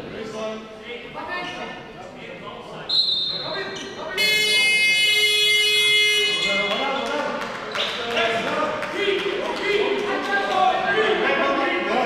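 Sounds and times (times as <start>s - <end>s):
chatter of players and spectators: 0.0s - 12.0s
shrill whistle blast: 2.9s - 6.8s
loud electronic buzzer: 4.2s - 6.9s.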